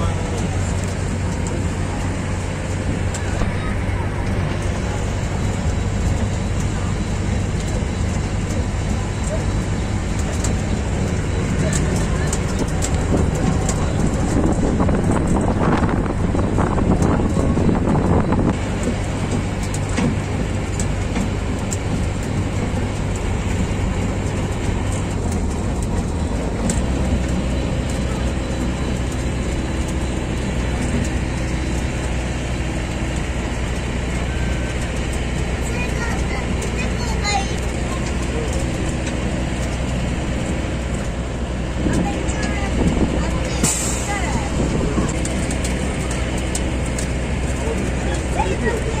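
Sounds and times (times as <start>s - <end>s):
rattles and clicks: 0.0s - 49.0s
train engine humming: 0.0s - 49.0s
train running rumble: 0.0s - 49.0s.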